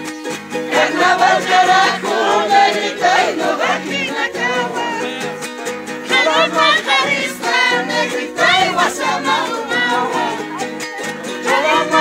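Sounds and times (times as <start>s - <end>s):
strummed charango: 0.0s - 12.0s
group singing in high voices: 0.5s - 12.0s.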